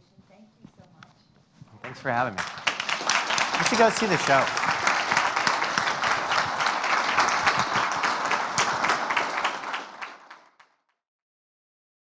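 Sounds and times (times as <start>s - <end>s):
audience applause: 1.8s - 10.8s.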